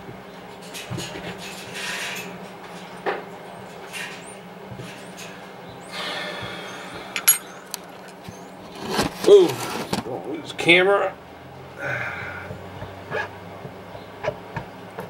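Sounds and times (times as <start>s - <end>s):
steady low hum: 0.0s - 15.0s
ringing metal clinks: 7.2s - 7.5s.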